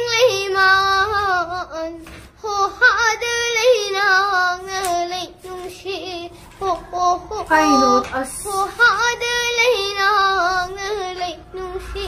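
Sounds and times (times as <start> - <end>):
girl singing and crying: 7.5 - 8.8.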